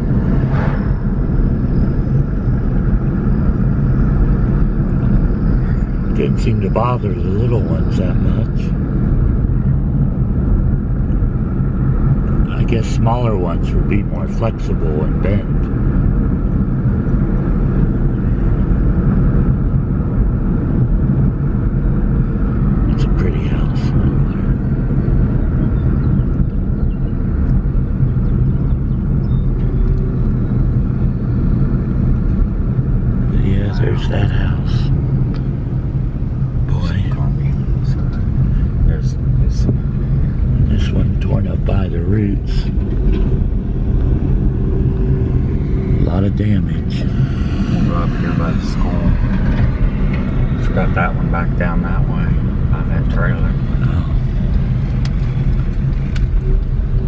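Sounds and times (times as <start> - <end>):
car engine and road drone: 0.0 - 57.0.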